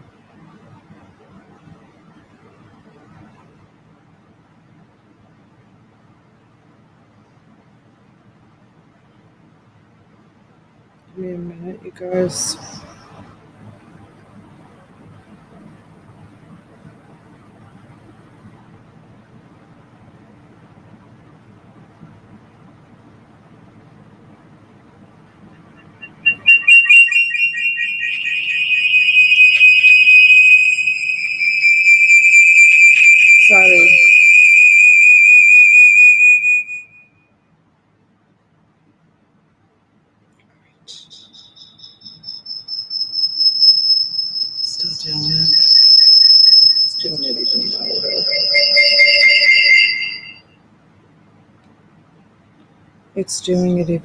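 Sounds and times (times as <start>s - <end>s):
faint hum: 0.0s - 54.0s
high-pitched feedback whistle: 12.4s - 13.2s, 25.5s - 37.2s, 40.9s - 50.6s.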